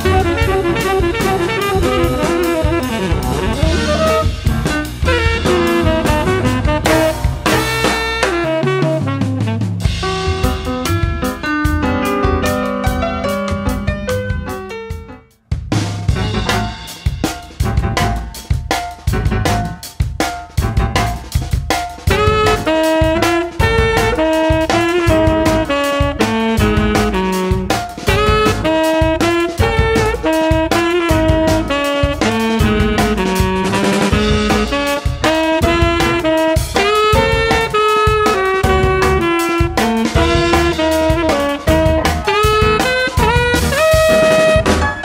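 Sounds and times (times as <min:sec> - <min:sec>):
plucked double bass: 0:00.0 - 0:07.9, 0:16.1 - 0:16.9, 0:40.2 - 0:45.0
tenor saxophone melody: 0:00.0 - 0:12.6, 0:22.1 - 0:45.0
double bass: 0:00.0 - 0:20.0, 0:20.6 - 0:45.0
drum kit with cymbal strokes: 0:00.0 - 0:45.0.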